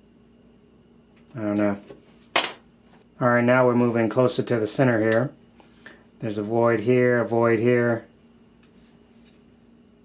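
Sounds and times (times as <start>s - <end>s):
faint steady hum: 0.0s - 10.0s
faint rustle of handling plastic: 8.6s - 9.5s.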